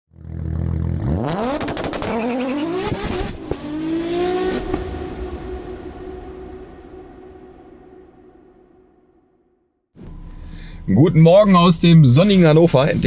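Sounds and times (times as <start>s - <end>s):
car engine revving: 0.1s - 8.3s.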